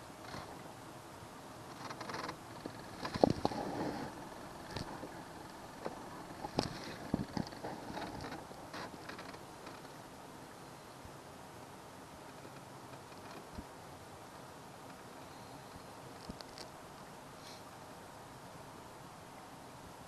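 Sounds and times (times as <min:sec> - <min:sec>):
faint steady hum: 0:00.0 - 0:20.0
knocks and creaks from boat hull: 0:01.7 - 0:10.0, 0:12.3 - 0:13.7.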